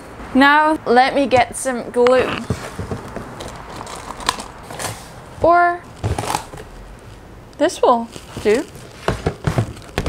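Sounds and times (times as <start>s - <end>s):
objects rustling in plastic bin: 7.8s - 10.0s.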